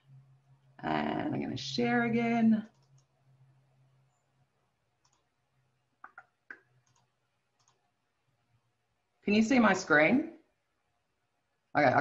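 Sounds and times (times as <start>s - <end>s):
computer mouse clicks: 2.6s - 3.2s, 5.0s - 5.3s, 6.0s - 7.9s.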